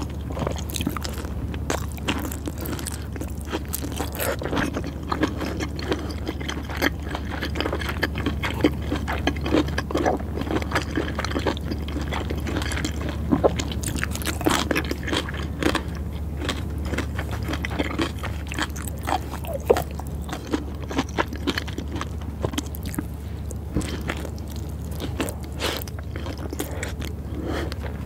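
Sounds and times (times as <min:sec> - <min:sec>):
chewing and biting food: 0:00.0 - 0:28.0
steady low hum: 0:00.0 - 0:28.0.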